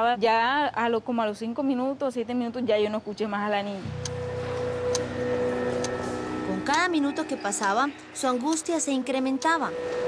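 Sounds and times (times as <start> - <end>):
low music drone: 3.8 - 10.0
clock ticking: 5.8 - 10.0.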